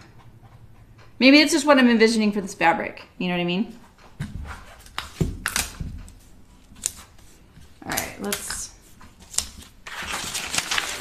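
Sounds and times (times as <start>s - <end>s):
paper rustling: 4.4s - 11.0s.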